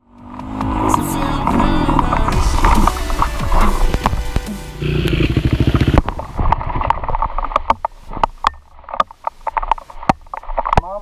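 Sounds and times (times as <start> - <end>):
dirt bike engine idling: 1.3 - 6.4.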